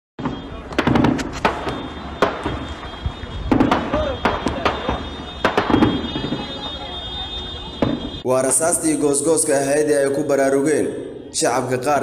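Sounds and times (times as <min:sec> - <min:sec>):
gunshots: 0:00.2 - 0:08.2.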